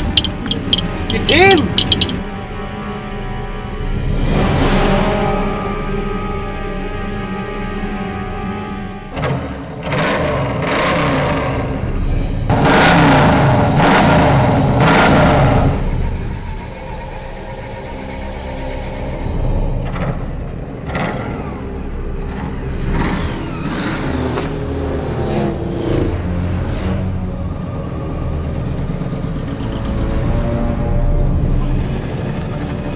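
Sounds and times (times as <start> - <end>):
car engine revving: 9.1 - 19.2.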